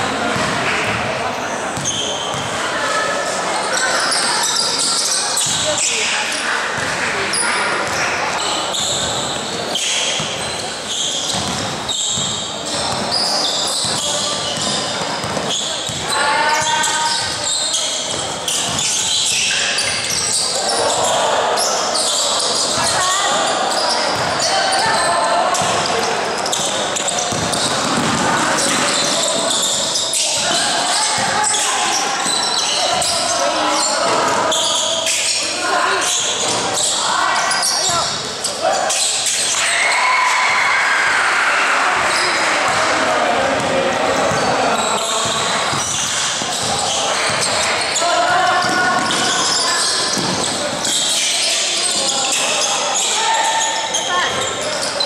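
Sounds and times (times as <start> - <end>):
basketball bouncing on gym floor: 0.2 - 1.1, 1.8 - 2.6, 7.8 - 8.0, 10.2 - 10.6, 11.3 - 13.2, 13.8 - 17.4, 26.5 - 29.7, 45.2 - 47.6, 48.6 - 51.1
shoes squeaking: 1.5 - 2.6, 6.8 - 39.7, 43.5 - 55.0.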